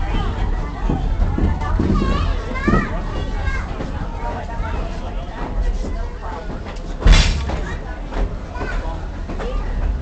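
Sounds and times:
children chattering and calling: 0:00.0 - 0:10.0.

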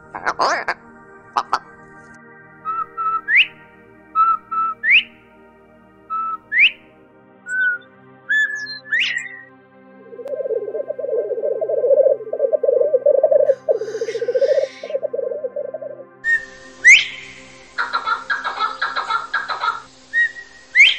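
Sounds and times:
background music drone: 0:00.0 - 0:20.9
partridge whistled calls: 0:02.7 - 0:03.6, 0:04.2 - 0:05.1, 0:06.1 - 0:06.8, 0:07.5 - 0:09.5, 0:10.1 - 0:20.9.

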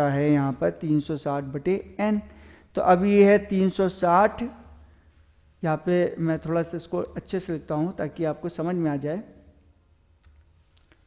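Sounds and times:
person speaking: 0:00.0 - 0:04.8, 0:05.6 - 0:09.4
low steady hum: 0:00.0 - 0:11.0.

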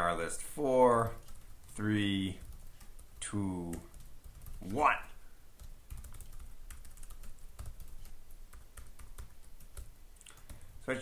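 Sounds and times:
typing on computer keyboard: 0:01.1 - 0:04.8, 0:05.6 - 0:10.6.

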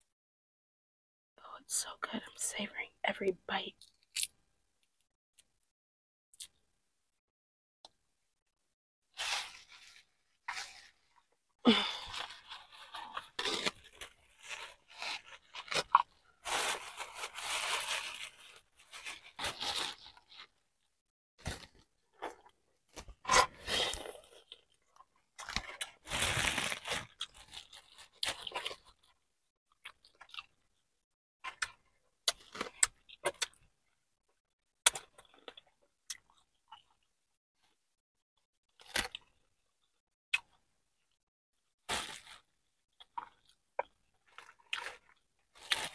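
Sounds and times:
plastic bag crinkling: 0:11.9 - 0:20.5, 0:26.0 - 0:28.5.

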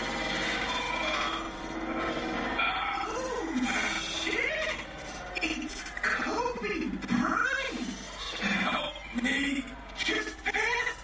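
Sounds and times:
dense cartoon soundtrack: 0:00.0 - 0:10.3.

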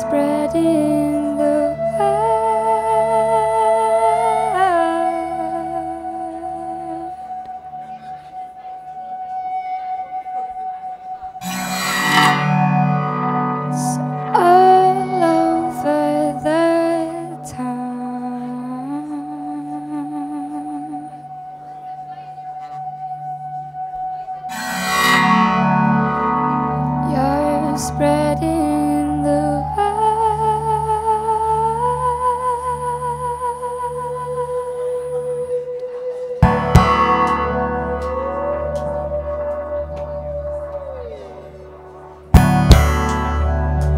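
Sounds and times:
woman singing wordlessly: 0:00.0 - 0:07.5, 0:13.7 - 0:22.3, 0:27.0 - 0:41.2
slide guitar gliding notes: 0:00.0 - 0:43.9
guitar note and chord ringing: 0:09.3 - 0:17.4, 0:24.5 - 0:29.8, 0:36.4 - 0:43.9
guitar strings strike ringing: 0:36.4 - 0:40.6, 0:42.3 - 0:43.9.

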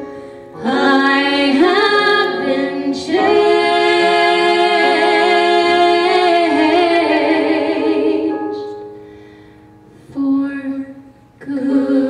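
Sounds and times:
two women singing a duet: 0:00.6 - 0:08.7, 0:10.1 - 0:12.0.

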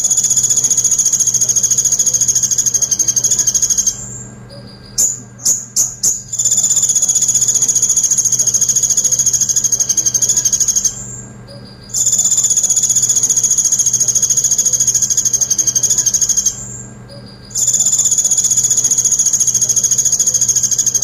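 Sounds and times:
sunbird singing high fast trill: 0:00.0 - 0:21.0.

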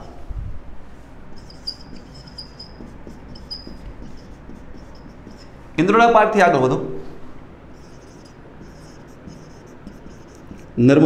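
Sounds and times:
marker scratching on whiteboard: 0:01.3 - 0:05.6, 0:07.7 - 0:10.8
man talking loudly: 0:05.8 - 0:07.0.

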